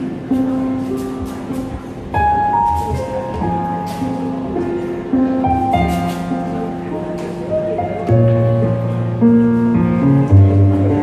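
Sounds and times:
held keyboard chords: 0.0s - 11.0s.

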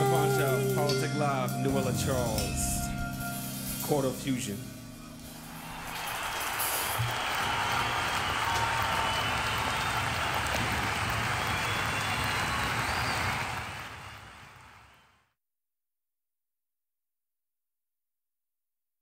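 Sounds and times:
song: 0.0s - 8.5s
applause: 5.6s - 15.3s.

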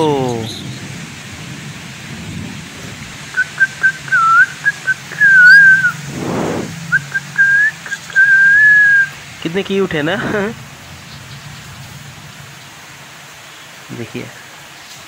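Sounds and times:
person whistling: 3.4s - 9.1s.

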